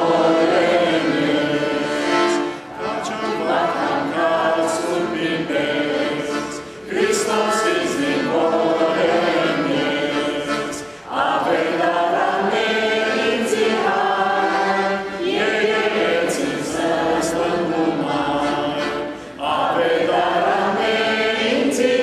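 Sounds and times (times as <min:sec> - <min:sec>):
sung church chant: 0:00.0 - 0:22.0.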